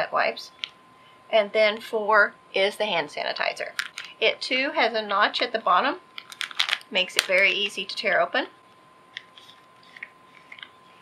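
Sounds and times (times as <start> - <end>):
plastic wrapper tearing: 6.2 - 7.3
faint crinkling: 8.6 - 11.0.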